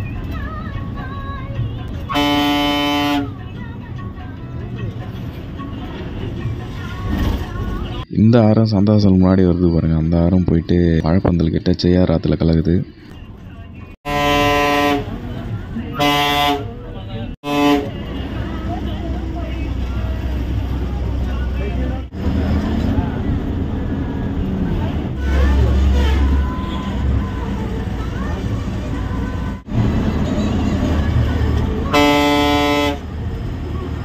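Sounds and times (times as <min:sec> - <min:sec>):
bus engine and road rumble: 0:00.0 - 0:34.0
voices: 0:00.0 - 0:34.0
bus horn blasts: 0:02.0 - 0:03.4, 0:14.0 - 0:15.3, 0:15.9 - 0:18.5, 0:25.2 - 0:27.4, 0:31.8 - 0:33.2.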